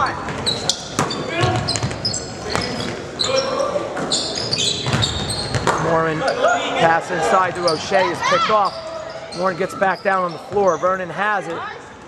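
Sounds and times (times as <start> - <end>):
sneakers squeaking: 0.0 - 12.0
basketball bouncing on hardwood floor: 1.0 - 2.7, 4.8 - 5.8.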